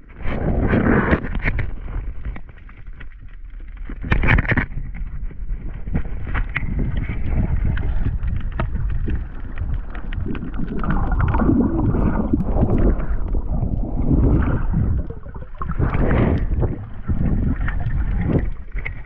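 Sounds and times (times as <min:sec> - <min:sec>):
wind noise on microphone: 0:00.0 - 0:02.5, 0:03.9 - 0:19.0
water noise: 0:04.3 - 0:19.0.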